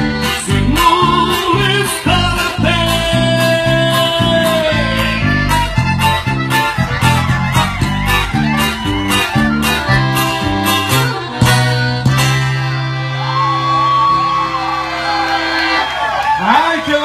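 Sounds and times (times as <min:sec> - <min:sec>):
band with accordion and guitar: 0:00.0 - 0:17.0.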